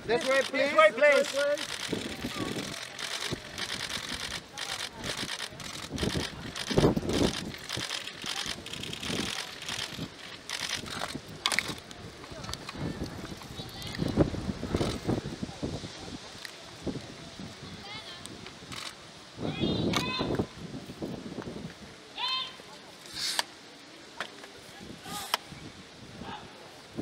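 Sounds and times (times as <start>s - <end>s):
murmur of voices: 0.0s - 20.6s, 21.9s - 27.0s.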